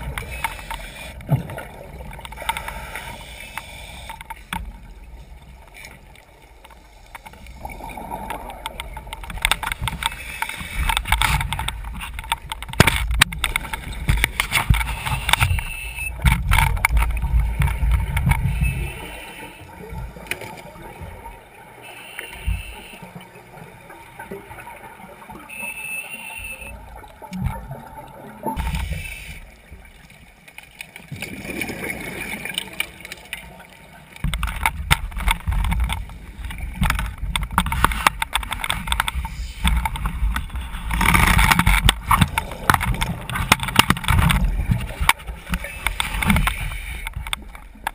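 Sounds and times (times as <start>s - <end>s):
regulator bubbles gurgling underwater: 0.0s - 47.9s.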